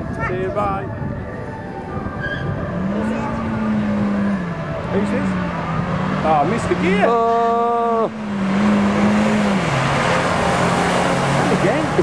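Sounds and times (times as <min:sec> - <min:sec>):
car engine revving: 0:02.3 - 0:12.0.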